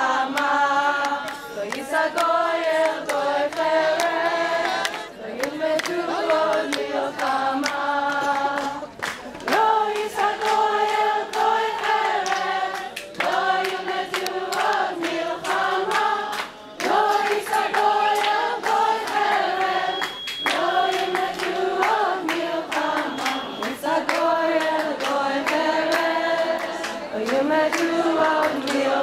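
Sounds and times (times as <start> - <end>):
group of voices singing: 0.0 - 29.0
hands clapping in time: 0.3 - 29.0.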